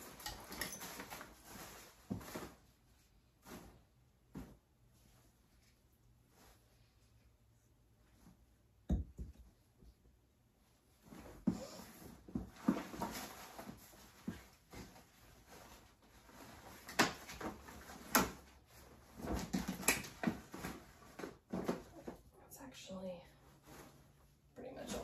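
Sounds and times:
fabric rustling: 0:00.0 - 0:08.6, 0:10.6 - 0:22.3, 0:23.2 - 0:25.0.

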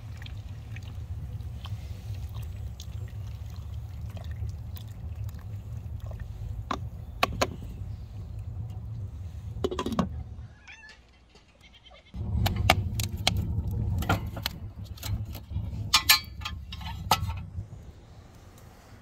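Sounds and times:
steady low rumble: 0:00.0 - 0:10.6, 0:12.1 - 0:19.0.

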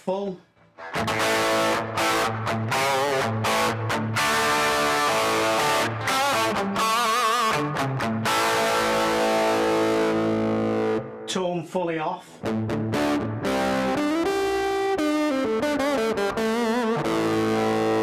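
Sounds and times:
distorted electric guitar riff: 0:00.6 - 0:11.4, 0:12.3 - 0:18.0.

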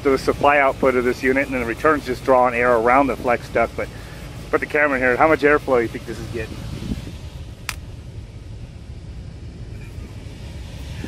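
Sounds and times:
hvac unit rumbling: 0:00.0 - 0:11.0
sharp click: 0:07.6 - 0:07.9.

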